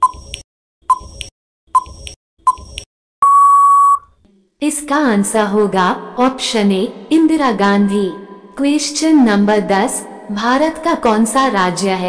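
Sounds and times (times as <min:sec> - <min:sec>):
long steady beep: 0:03.2 - 0:04.1.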